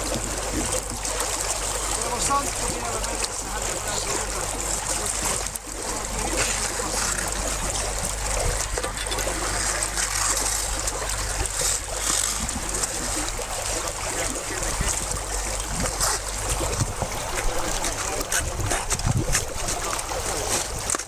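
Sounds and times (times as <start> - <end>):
people clambering out of water: 0.0 - 21.0
water splashing among ice: 0.0 - 21.0.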